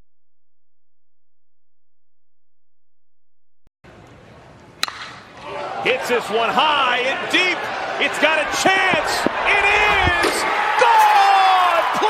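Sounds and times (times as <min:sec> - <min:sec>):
crowd noise: 0:03.9 - 0:12.0
metal bat hitting a ball: 0:04.8 - 0:05.3.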